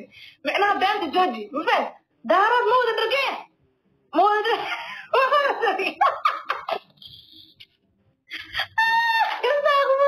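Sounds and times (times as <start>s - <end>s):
woman speaking: 0.0s - 3.5s, 4.1s - 6.0s, 9.2s - 10.0s
woman laughing: 4.6s - 7.7s, 8.3s - 10.0s.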